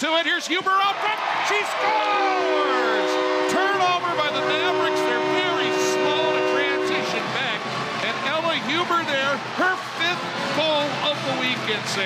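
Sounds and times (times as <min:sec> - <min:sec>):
crowd cheering and shouting: 0:00.0 - 0:12.0
arena goal horn chord: 0:01.8 - 0:07.3.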